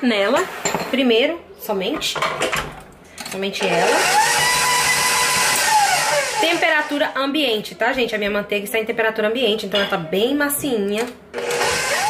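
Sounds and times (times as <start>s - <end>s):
stand mixer motor whining: 4.0s - 7.0s, 11.4s - 12.0s.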